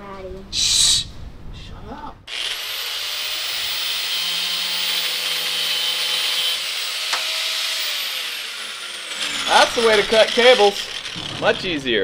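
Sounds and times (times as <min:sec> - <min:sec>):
power grinder cutting steel cable: 0:02.3 - 0:12.0.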